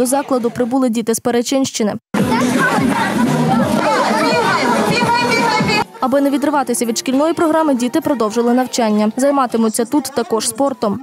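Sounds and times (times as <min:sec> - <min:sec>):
children chattering and calling: 0:02.2 - 0:11.0
music: 0:02.2 - 0:11.0.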